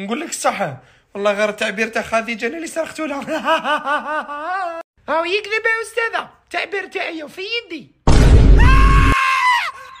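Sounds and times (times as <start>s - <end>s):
high-pitched scream: 8.6s - 10.0s.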